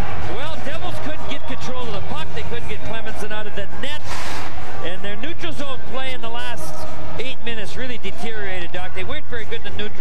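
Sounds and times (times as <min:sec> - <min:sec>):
man commentating: 0:00.2 - 0:04.1, 0:04.8 - 0:10.0.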